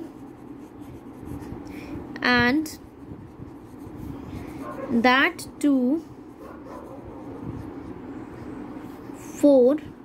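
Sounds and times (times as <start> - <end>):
pen scratching on paper: 0.0 - 1.6, 2.7 - 5.2, 6.7 - 8.0.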